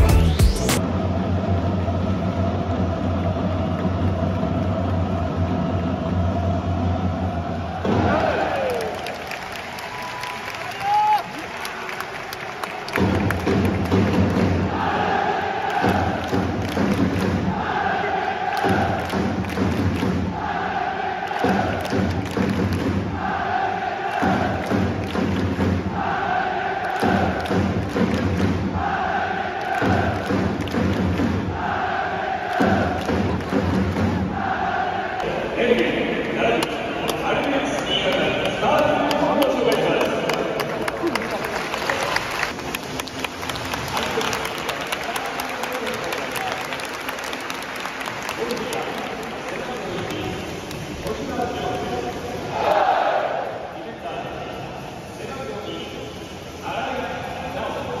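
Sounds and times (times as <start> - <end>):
crowd chanting in unison: 0.3 - 9.2, 12.6 - 40.8, 51.8 - 55.2
drum thumps: 7.4 - 8.4, 13.0 - 15.1, 15.7 - 17.8, 18.6 - 20.5, 21.4 - 23.3, 24.2 - 26.1, 27.0 - 28.9, 29.7 - 31.7, 32.6 - 34.5.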